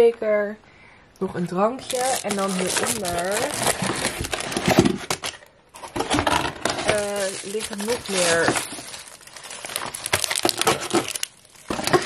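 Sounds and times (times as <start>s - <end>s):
rustling of packaging: 1.8s - 12.0s.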